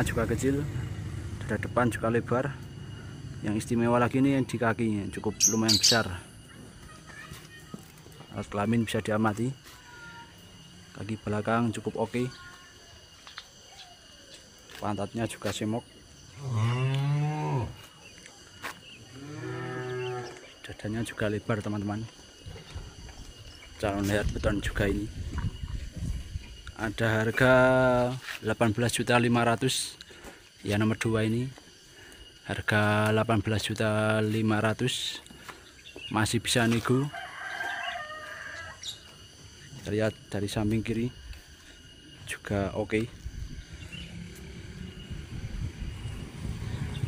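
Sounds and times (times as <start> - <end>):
cattle mooing: 16.4 - 17.8, 19.1 - 20.4
rooster crowing: 36.9 - 39.1.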